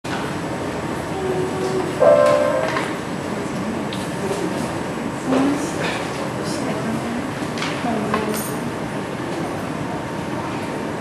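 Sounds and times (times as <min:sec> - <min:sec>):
grand piano piece: 0:02.0 - 0:03.1.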